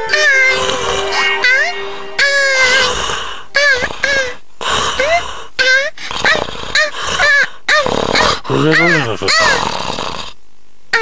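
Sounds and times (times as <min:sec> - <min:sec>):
cartoon puppy yapping: 0:06.2 - 0:09.6.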